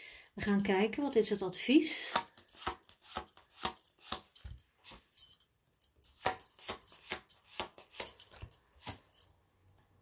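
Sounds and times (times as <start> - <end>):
cards being handled: 2.2 - 5.1, 6.2 - 9.1.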